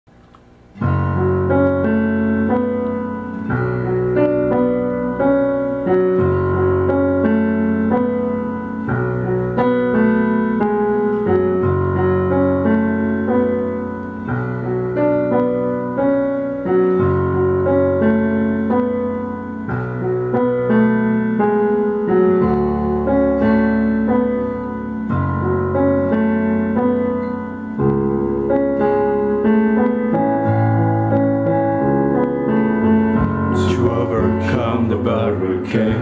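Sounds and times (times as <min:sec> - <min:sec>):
piano playing chords: 0:00.1 - 0:36.0.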